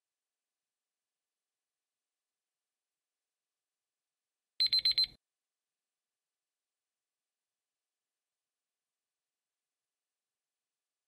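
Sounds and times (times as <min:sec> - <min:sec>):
high electronic timer beeps: 0:04.6 - 0:05.2.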